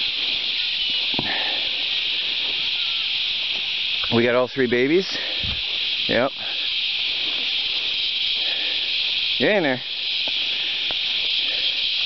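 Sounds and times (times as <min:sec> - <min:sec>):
high-pitched outdoor hiss: 0:00.0 - 0:12.0.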